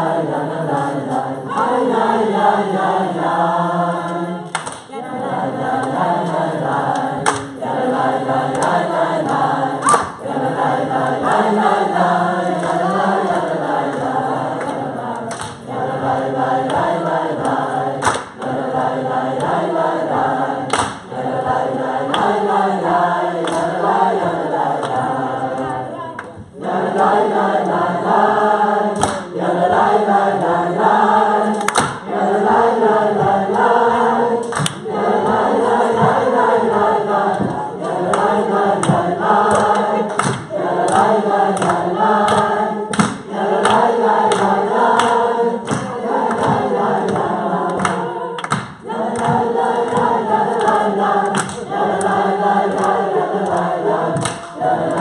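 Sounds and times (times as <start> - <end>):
hand clap: 0.0 - 2.8, 4.0 - 55.0
congregation singing a cappella: 0.0 - 55.0.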